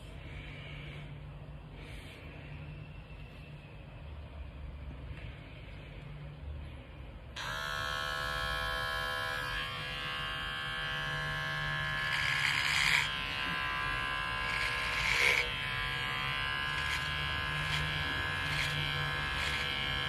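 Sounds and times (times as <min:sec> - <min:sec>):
electric hair clipper buzzing: 0:07.4 - 0:20.0.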